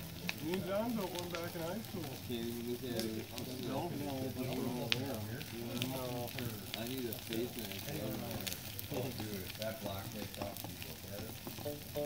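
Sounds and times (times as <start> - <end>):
bonfire crackling and popping: 0.0 - 12.0.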